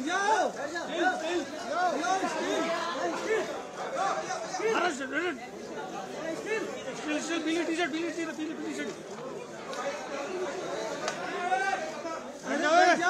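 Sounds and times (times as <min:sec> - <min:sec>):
babble of voices: 0:00.0 - 0:13.0.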